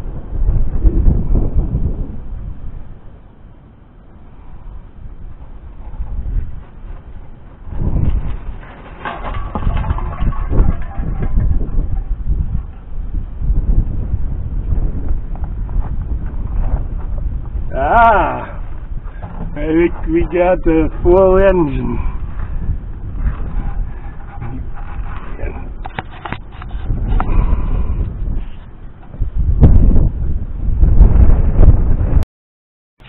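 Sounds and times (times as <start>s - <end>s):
wind buffeting microphone: 0.0s - 32.2s.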